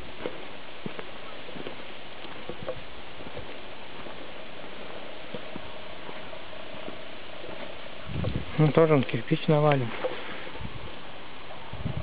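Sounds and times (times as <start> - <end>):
footsteps on grass and gravel: 0.0 - 11.5
faint steady tone: 0.0 - 12.0
outdoor microphone hiss: 0.0 - 12.0.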